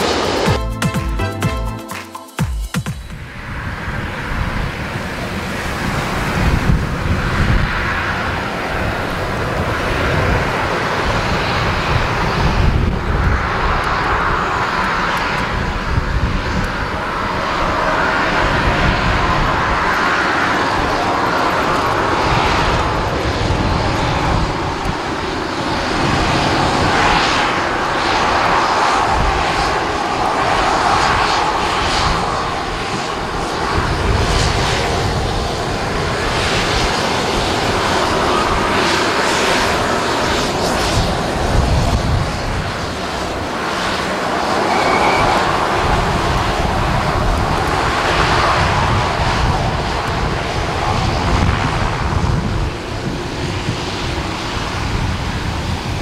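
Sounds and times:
turboprop engines droning: 0.0 - 1.4, 2.6 - 56.0.

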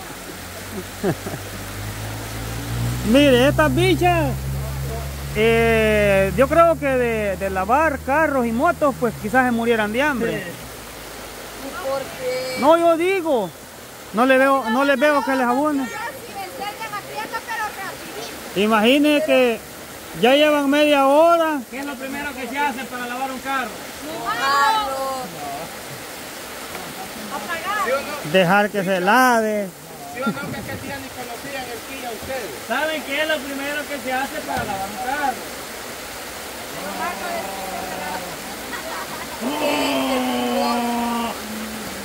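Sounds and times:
river water running: 0.0 - 42.0.

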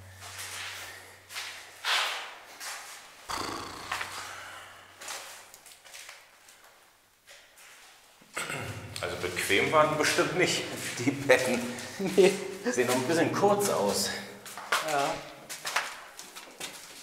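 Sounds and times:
breathy rushes of noise: 3.3 - 5.3.

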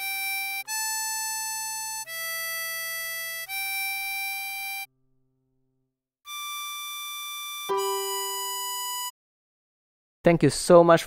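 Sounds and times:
harmonica note: 0.0 - 4.9, 6.3 - 9.1.

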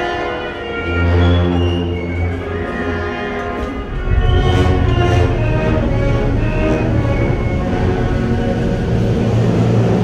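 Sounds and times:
brass band playing funeral march: 0.0 - 10.0.

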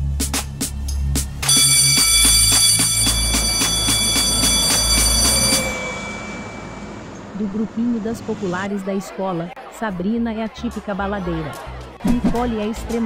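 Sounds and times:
music with a beat: 0.0 - 5.6
electric bell ringing: 1.4 - 7.6.

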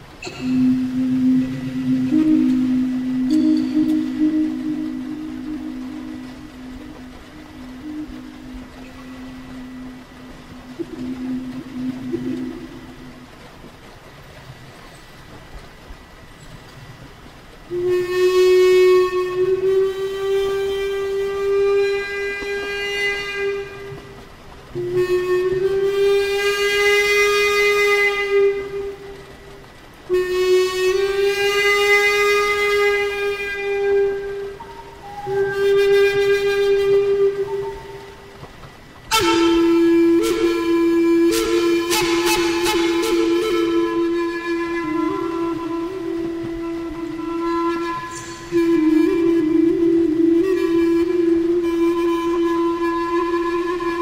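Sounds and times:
flute playing long held notes: 0.0 - 54.0.

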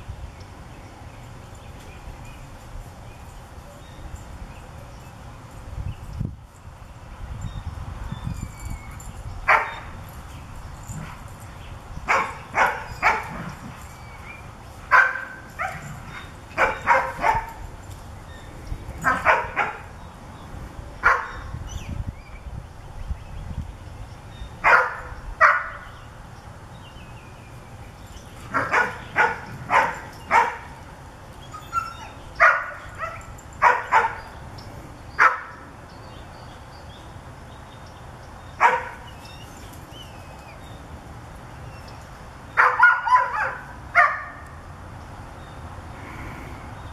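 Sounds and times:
dogs barking: 9.5 - 9.9, 12.0 - 13.9, 14.9 - 17.7, 19.0 - 19.9, 21.0 - 21.5, 24.6 - 25.9, 28.4 - 30.8, 31.5 - 34.4, 35.2 - 35.6, 38.6 - 39.1, 42.6 - 44.4.

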